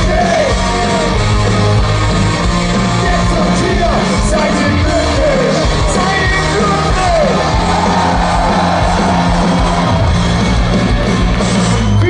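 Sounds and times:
fans yelling and singing along: 0:00.0 - 0:12.0
live band playing amplified rock: 0:00.0 - 0:12.0.

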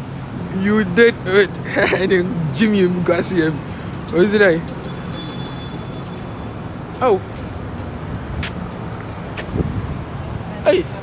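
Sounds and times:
city street rumble: 0:00.0 - 0:11.0.

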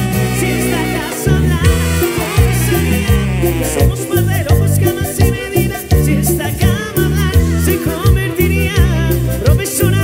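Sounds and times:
latin dance band playing: 0:00.0 - 0:10.0
man singing: 0:00.0 - 0:10.0.

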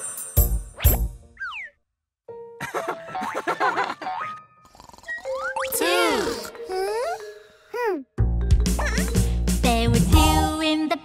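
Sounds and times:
children's song backing: 0:08.8 - 0:11.0.

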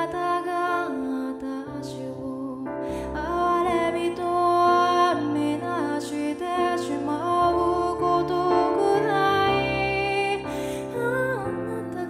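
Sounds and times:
soft instrumental accompaniment: 0:00.0 - 0:12.0.

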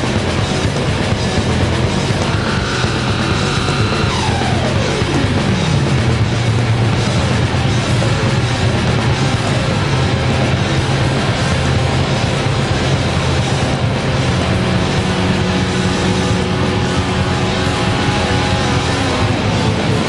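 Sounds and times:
rock band playing live: 0:00.0 - 0:20.0.

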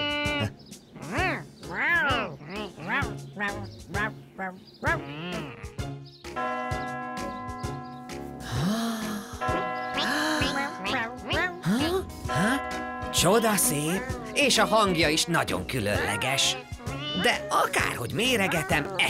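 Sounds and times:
playful children's music: 0:02.2 - 0:19.0
clock tower bells chiming: 0:06.4 - 0:07.9.

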